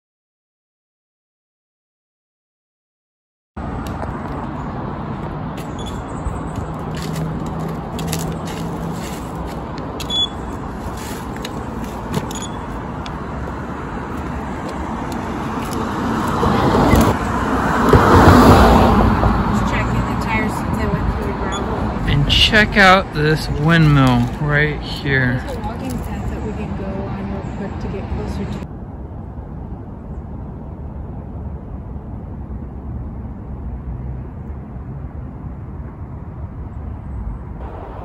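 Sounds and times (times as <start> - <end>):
vehicle passing close: 3.6 - 25.4
cars going by: 3.6 - 38.0.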